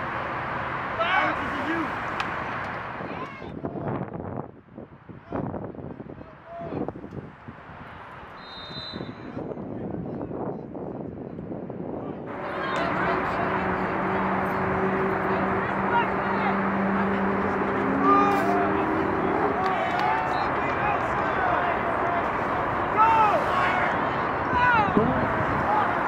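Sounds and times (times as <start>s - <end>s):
crowd voices shouting: 12.3s - 26.0s.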